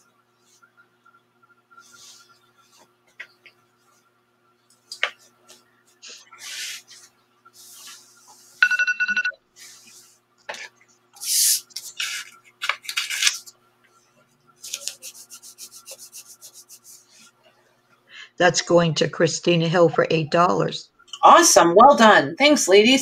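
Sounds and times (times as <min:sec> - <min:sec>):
short pulsing electronic beep: 0:08.6 - 0:09.4
paper rustling: 0:11.7 - 0:13.5, 0:14.6 - 0:16.8
paper tearing from notebook: 0:11.8 - 0:13.5.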